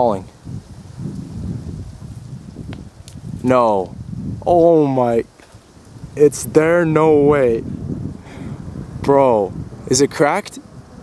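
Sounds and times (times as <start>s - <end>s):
wind buffeting microphone: 0.0s - 11.0s
faint rustling: 5.2s - 6.2s.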